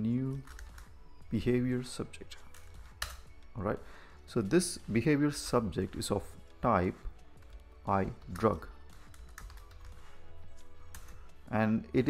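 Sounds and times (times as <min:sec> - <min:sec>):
quiet background music: 0:00.0 - 0:12.0
keyboard typing: 0:00.4 - 0:01.0, 0:07.4 - 0:10.2.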